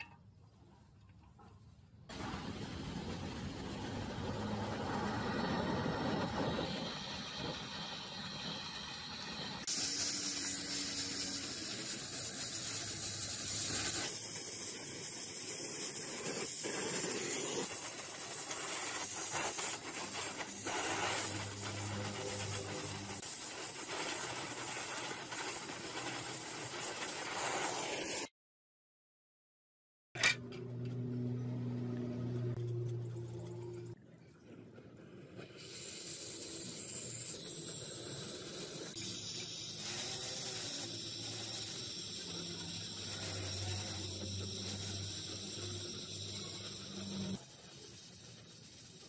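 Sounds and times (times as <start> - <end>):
welding torch flame hissing: 2.1 - 28.3, 35.3 - 49.0.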